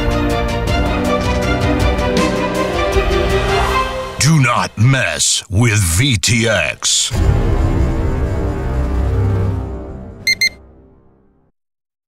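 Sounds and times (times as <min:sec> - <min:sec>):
background music: 0:00.0 - 0:11.5
double electronic beep: 0:10.3 - 0:10.6.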